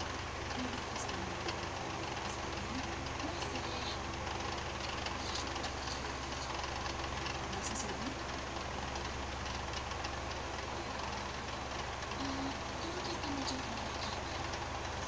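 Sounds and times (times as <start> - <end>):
faint voices: 0.5 - 4.2, 4.8 - 8.3, 10.7 - 15.0.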